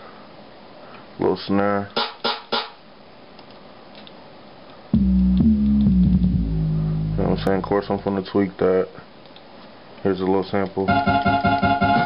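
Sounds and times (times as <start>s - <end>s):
faint room hiss: 0.0s - 12.0s
low sustained synth tones: 5.0s - 8.0s.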